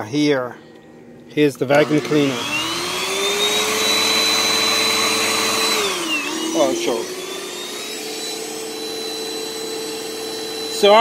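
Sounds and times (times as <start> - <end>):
vacuum cleaner running: 0.7 - 11.0.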